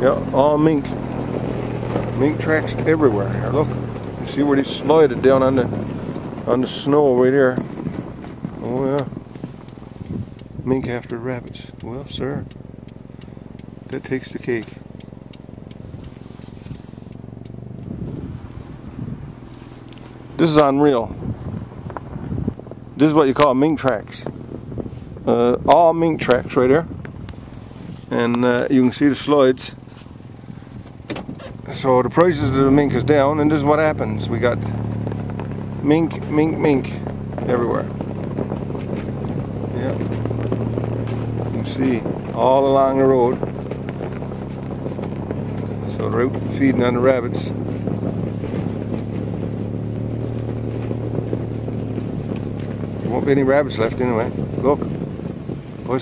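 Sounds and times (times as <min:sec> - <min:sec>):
car engine idling: 0:00.0 - 0:56.0.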